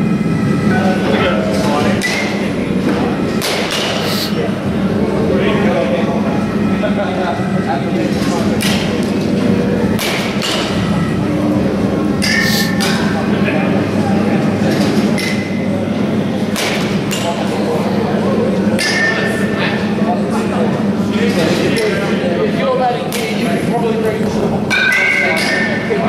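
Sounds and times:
steady low hum: 0.0s - 24.8s
baseball bat striking balls: 9.9s - 10.9s, 12.2s - 13.0s.

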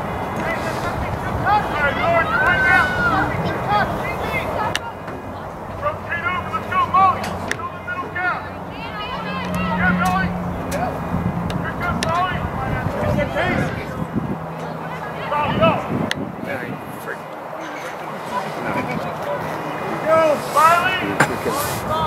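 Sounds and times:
distant people calling out: 0.0s - 22.0s
outdoor background noise: 0.0s - 22.0s.

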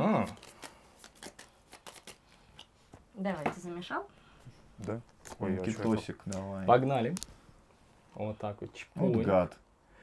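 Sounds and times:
playing cards shuffled by hand: 0.0s - 2.7s, 4.8s - 7.4s.

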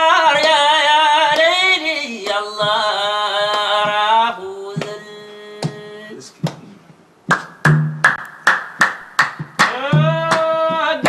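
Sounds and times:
sharp drum strokes: 7.3s - 11.0s.

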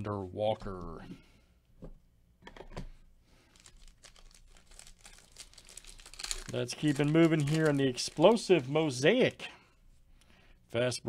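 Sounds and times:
foil wrapper crinkling: 3.4s - 9.4s.

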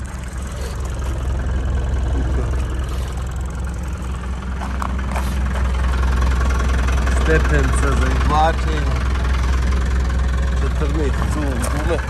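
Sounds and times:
diesel van engine idling: 0.0s - 12.0s.

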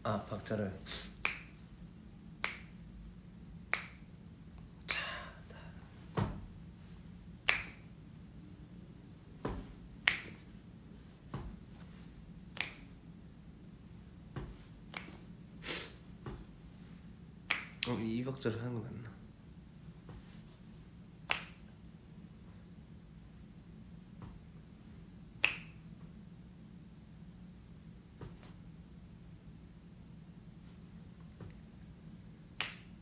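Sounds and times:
finger snaps: 1.1s - 1.6s, 2.4s - 2.8s, 3.7s - 5.2s, 7.4s - 7.9s, 10.0s - 10.5s, 12.5s - 13.0s, 14.9s - 15.3s, 17.4s - 18.0s, 21.2s - 21.7s, 25.4s - 25.9s, 32.6s - 33.0s
faint soft tap: 9.4s - 10.4s.

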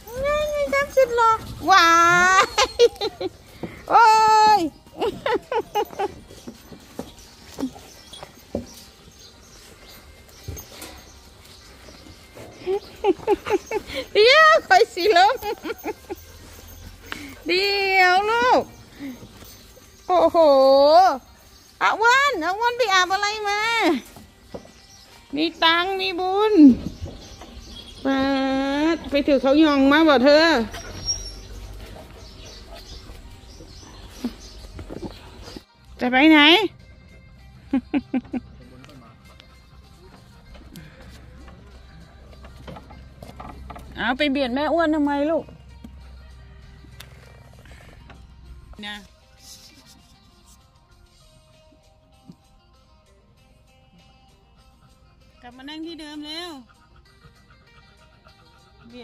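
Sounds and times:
dogs whining and yelping: 0.0s - 3.8s, 12.1s - 17.5s, 30.2s - 35.6s, 56.6s - 59.0s
woman speaking in sing-song tone: 0.1s - 2.6s, 14.1s - 15.6s, 17.4s - 18.7s, 21.8s - 24.0s, 25.3s - 26.8s, 28.0s - 30.7s, 48.8s - 49.2s, 55.4s - 56.7s.

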